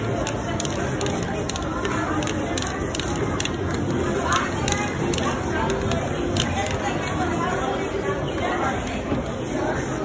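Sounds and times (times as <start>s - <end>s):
indistinct background voices: 0.0s - 10.0s
spray can hissing: 0.0s - 10.0s.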